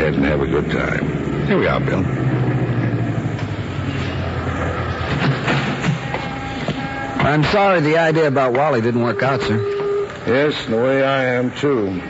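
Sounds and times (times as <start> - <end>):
car engine humming: 0.0 - 12.0.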